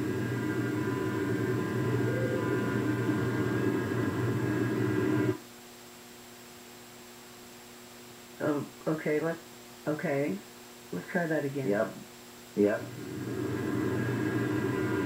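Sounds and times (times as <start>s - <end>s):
steady hiss and hum: 0.0s - 15.0s.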